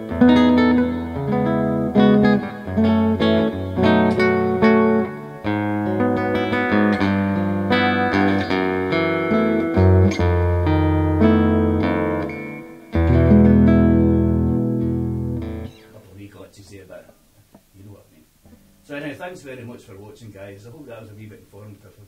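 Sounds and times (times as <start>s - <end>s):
nylon-string guitar fingerstyle: 0.0s - 18.9s.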